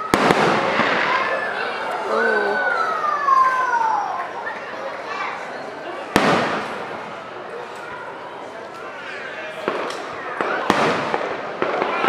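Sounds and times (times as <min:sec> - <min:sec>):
firework bang with echo: 0:00.0 - 0:01.6, 0:06.1 - 0:07.1, 0:09.6 - 0:12.0
people talking: 0:00.0 - 0:12.0.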